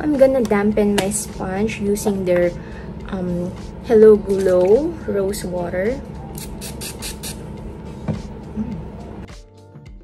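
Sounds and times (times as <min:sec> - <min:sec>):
background music: 0:00.0 - 0:10.0
spray bottle hissing: 0:06.4 - 0:07.4.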